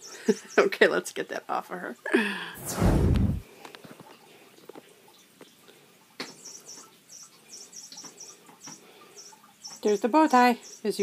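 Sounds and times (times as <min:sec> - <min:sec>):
loud low thump: 0:02.6 - 0:03.4.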